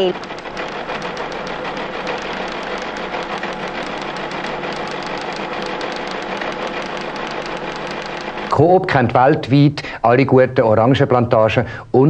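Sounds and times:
steady motor hum: 0.0s - 9.5s
teleprinter type clattering: 0.0s - 9.8s.

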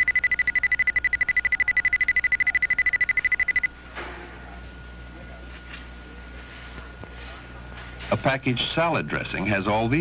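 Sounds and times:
rapid pulsing alarm beep: 0.0s - 3.8s.

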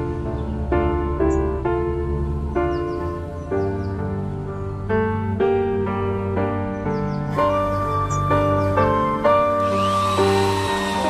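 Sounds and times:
background music with keyboard: 0.0s - 11.0s
electric drill whining: 9.6s - 11.0s.

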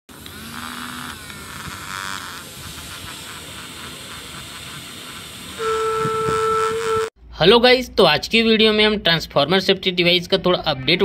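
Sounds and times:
small motors whirring fan blades: 0.1s - 7.1s.

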